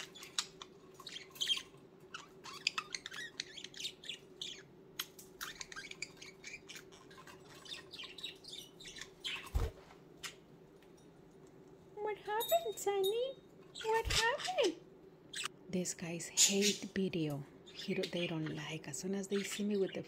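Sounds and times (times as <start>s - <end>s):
budgies chirping: 0.0s - 10.4s, 13.7s - 15.5s, 16.3s - 17.0s, 17.6s - 20.0s.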